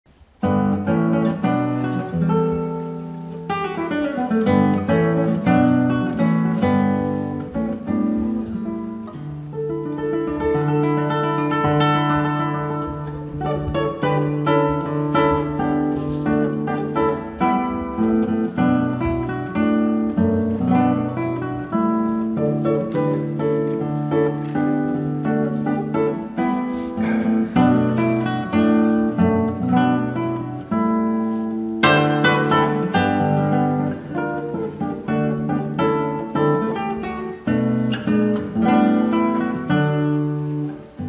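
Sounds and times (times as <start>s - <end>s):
fingerpicked classical guitar: 0.1s - 41.0s.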